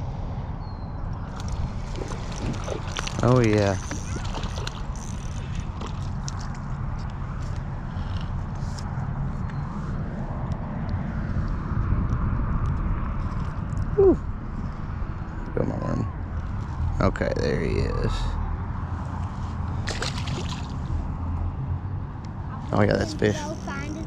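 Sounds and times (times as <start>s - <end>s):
wind on microphone: 0.0s - 6.3s, 7.8s - 17.0s.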